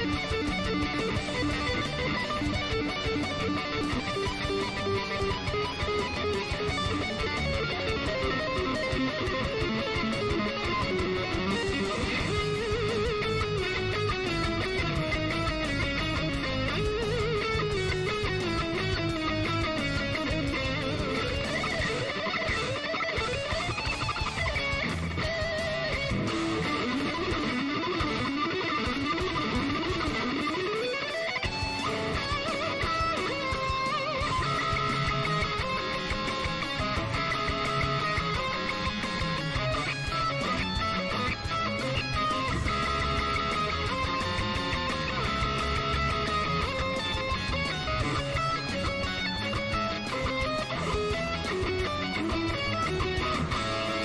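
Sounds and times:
electric guitar lead runs: 0.0s - 54.0s.

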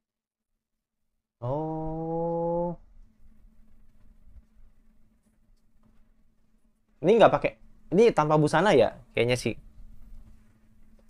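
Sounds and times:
man humming: 1.4s - 2.9s
faint low hum: 1.4s - 11.0s.

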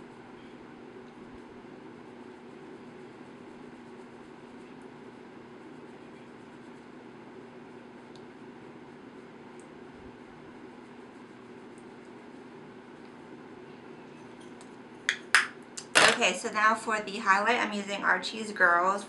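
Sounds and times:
room noise hum: 0.0s - 19.0s.

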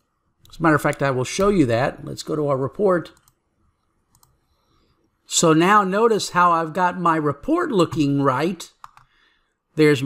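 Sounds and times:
computer mouse clicks: 3.1s - 4.5s, 8.8s - 9.2s.

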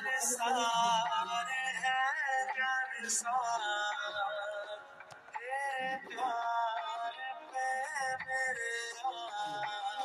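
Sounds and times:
pop song with sung vocal: 0.0s - 10.0s.

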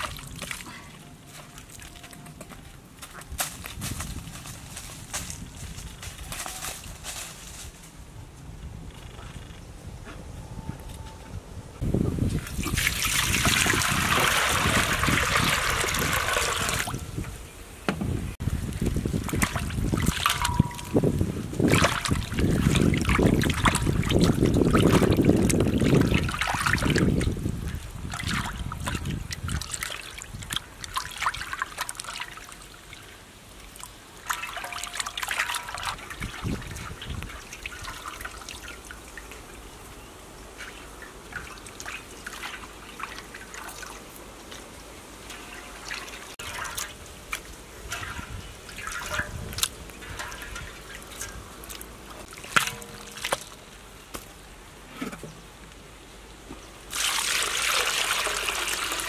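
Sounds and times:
rush of running water: 12.3s - 17.1s, 56.9s - 59.0s
water sloshing in a metal wok: 18.8s - 39.4s, 40.5s - 44.2s, 45.2s - 53.8s, 56.9s - 59.0s.

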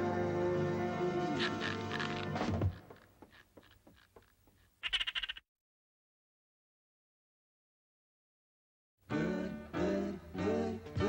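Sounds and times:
cartoon mouse squeak: 4.8s - 5.4s.

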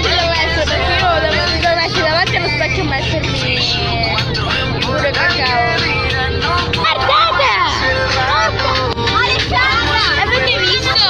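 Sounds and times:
many voices chattering loudly: 0.0s - 11.0s
vehicle engine drone: 0.0s - 11.0s.

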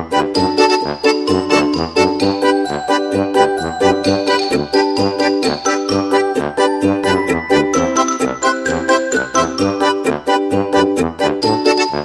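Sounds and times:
bright tinkly music: 0.4s - 10.3s, 11.1s - 12.0s.

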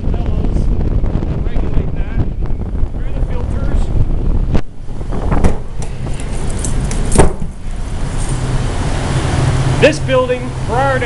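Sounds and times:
air handler blower rushing: 0.0s - 11.0s
sharp knocks: 5.1s - 7.6s.

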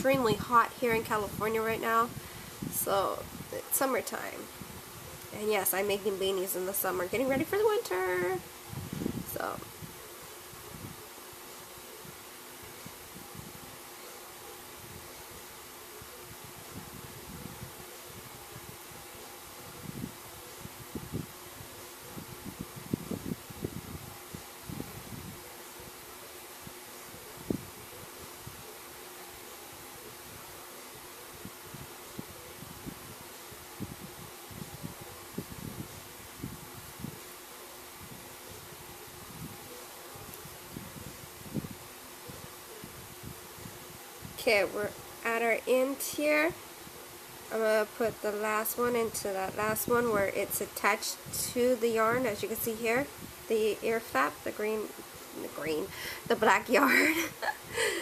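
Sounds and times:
electric fan humming: 0.0s - 58.0s.

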